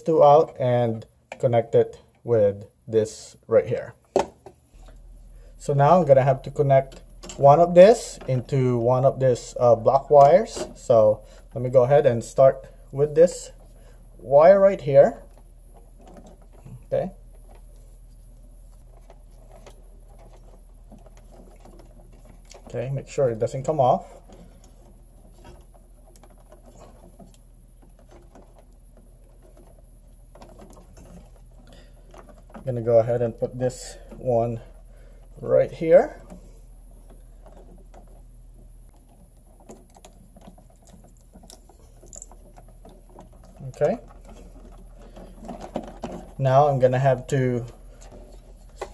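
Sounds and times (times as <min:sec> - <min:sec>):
steady low hum: 0:00.0 - 0:48.9
wires scratching and clicking: 0:11.6 - 0:48.9.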